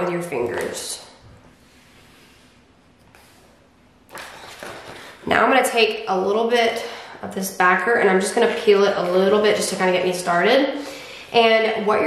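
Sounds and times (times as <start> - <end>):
plastic sheet rustling: 4.1 - 5.2.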